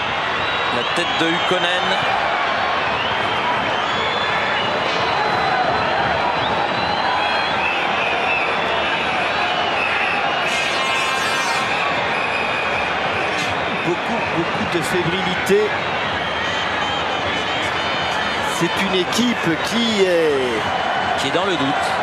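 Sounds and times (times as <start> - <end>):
stadium crowd voices: 0.0 - 22.0.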